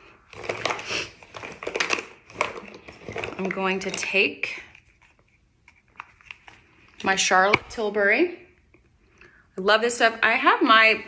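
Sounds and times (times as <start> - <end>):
makeup containers clicking and rattling: 0.3 - 4.9.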